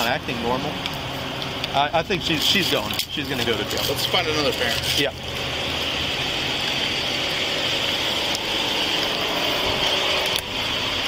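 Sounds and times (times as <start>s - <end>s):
vehicle engine idling: 0.0s - 11.0s
rushing noise: 5.2s - 11.0s.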